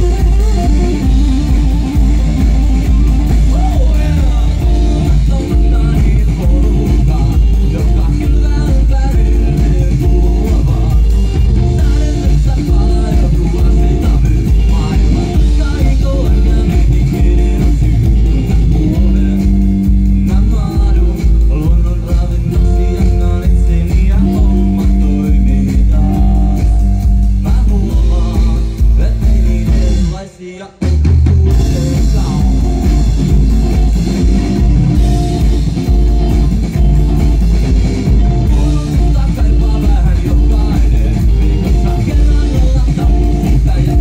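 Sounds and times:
drum kit: 0.0 - 44.0
electric bass: 0.0 - 44.0
electric guitar: 0.0 - 44.0
live rock band playing: 0.0 - 44.0.

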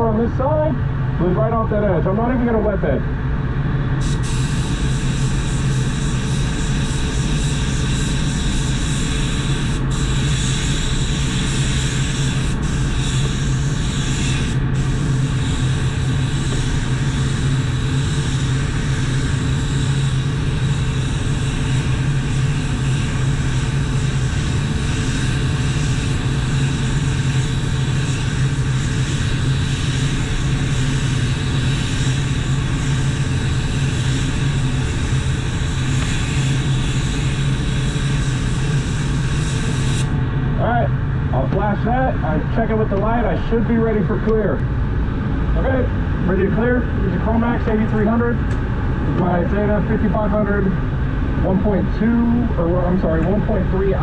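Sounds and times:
ventilation hum: 0.0 - 54.0
paint spray gun hissing: 4.0 - 40.2.

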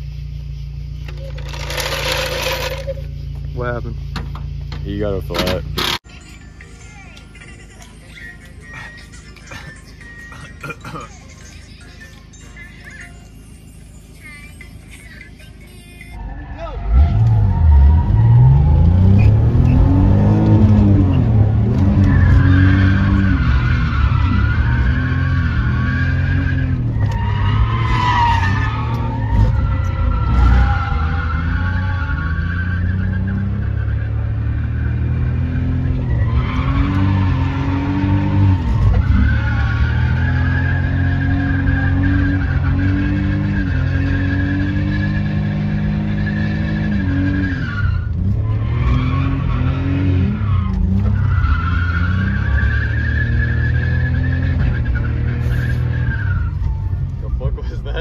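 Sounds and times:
tyres squealing: 1.0 - 6.1, 16.2 - 57.5
car engine revving: 16.2 - 58.0.

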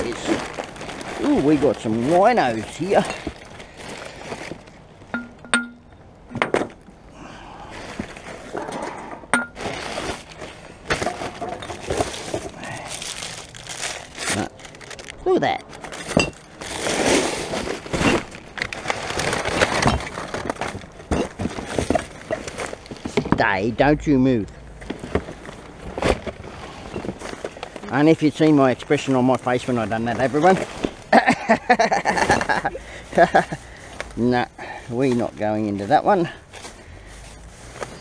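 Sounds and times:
bin bags and cardboard rustling: 0.0 - 6.8, 7.6 - 23.7, 24.3 - 38.0
glass bottles clinking: 5.1 - 5.9, 15.9 - 16.6, 21.1 - 22.5.

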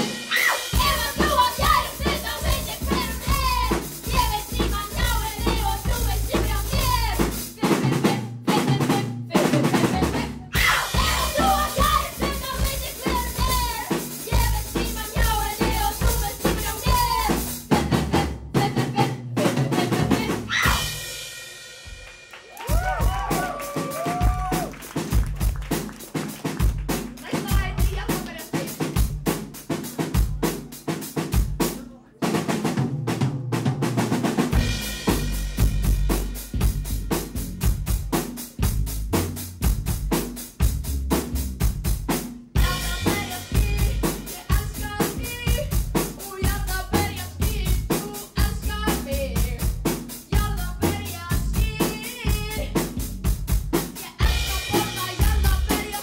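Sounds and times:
full rock band playing: 0.0 - 7.6, 10.5 - 17.9, 20.5 - 31.8, 33.9 - 56.0
drum kit playing a break: 0.0 - 56.0
electric bass: 34.6 - 42.0, 54.2 - 55.8.

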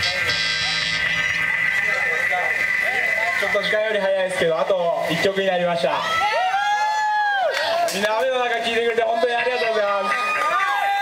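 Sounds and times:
long held high tone: 0.0 - 3.5
man speaking through pa system: 0.0 - 6.1, 8.0 - 10.2.

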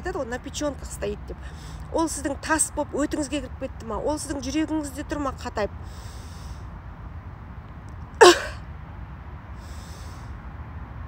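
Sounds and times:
woman's sharp exhale: 8.2 - 8.6, 9.6 - 10.3.

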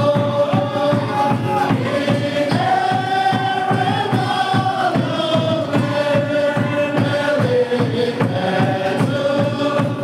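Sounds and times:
group singing a worship song: 0.0 - 10.0
steady low beat: 0.0 - 10.0.

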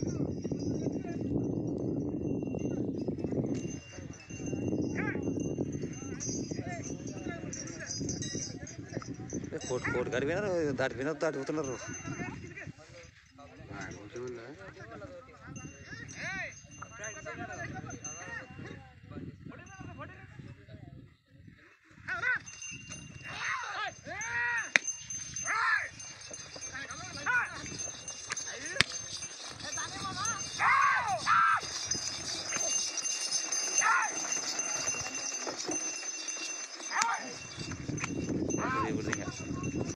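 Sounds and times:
men talking and calling out: 0.0 - 20.8, 21.5 - 39.9
hoofbeats on dry ground: 26.0 - 39.4
men shouting calls: 29.7 - 31.7, 38.5 - 39.2.

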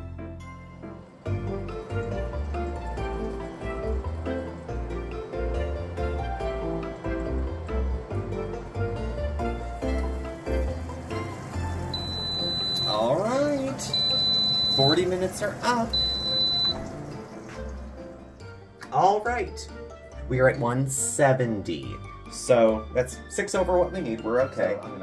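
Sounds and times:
background music: 0.0 - 25.0
high-pitched electronic beeps: 11.9 - 15.1, 15.9 - 16.8.

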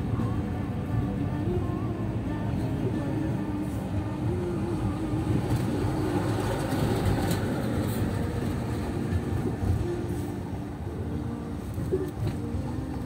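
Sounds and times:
car engine and tyres rumbling: 0.0 - 13.0.

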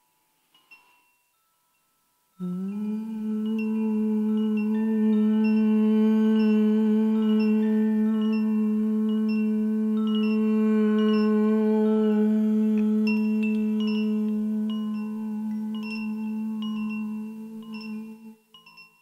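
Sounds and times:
wind chimes tinkling: 0.0 - 19.0
low drone tone: 2.4 - 18.4.

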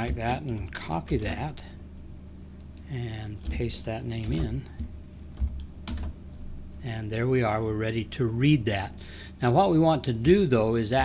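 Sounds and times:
computer keyboard keystrokes: 3.4 - 6.2.

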